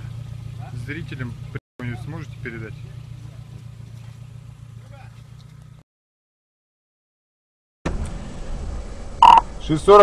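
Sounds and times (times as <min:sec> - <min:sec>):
car engine idling: 0:00.0 - 0:05.8.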